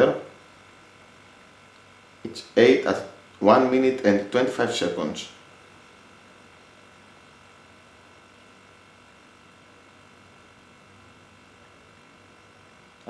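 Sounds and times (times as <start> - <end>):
compressor humming: 0.0 - 13.0.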